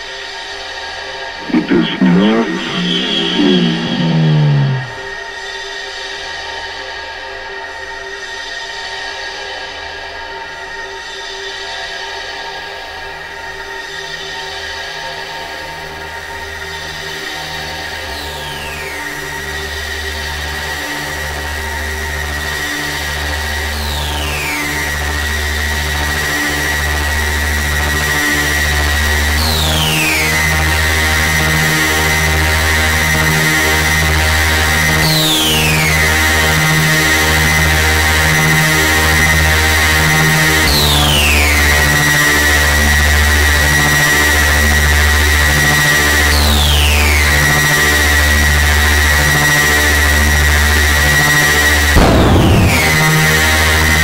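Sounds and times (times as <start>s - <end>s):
synthesizer bass pulse: 1.4s - 5.0s, 52.0s - 53.6s
falling synth sweep: 52.0s - 53.6s
steady high tone: 52.0s - 53.6s.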